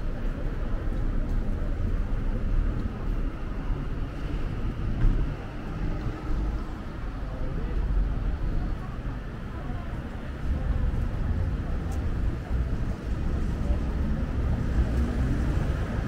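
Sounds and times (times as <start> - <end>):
traffic rumble: 0.0 - 16.0.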